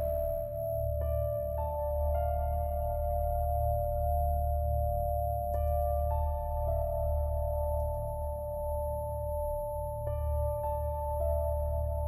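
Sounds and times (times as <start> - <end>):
ambient film music: 0.0 - 12.0.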